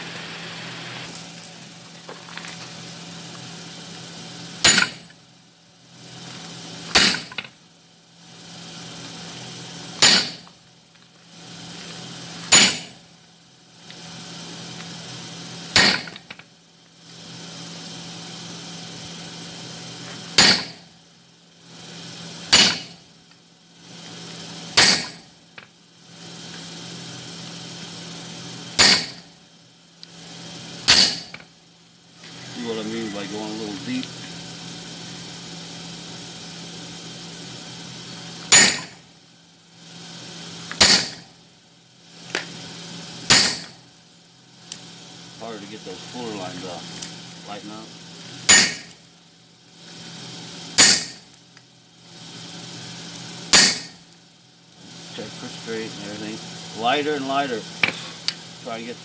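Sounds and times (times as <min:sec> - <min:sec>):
steady low hum: 0:00.0 - 0:59.0
ringing hammer blows on metal: 0:04.6 - 0:05.2, 0:06.9 - 0:07.4, 0:10.0 - 0:10.5, 0:12.5 - 0:13.1, 0:15.8 - 0:16.2, 0:20.4 - 0:20.9, 0:22.5 - 0:23.0, 0:24.8 - 0:25.3, 0:28.8 - 0:29.3, 0:30.9 - 0:31.3, 0:38.5 - 0:39.0, 0:40.8 - 0:41.3, 0:43.3 - 0:43.8, 0:48.5 - 0:49.0, 0:50.8 - 0:51.3, 0:53.5 - 0:54.0.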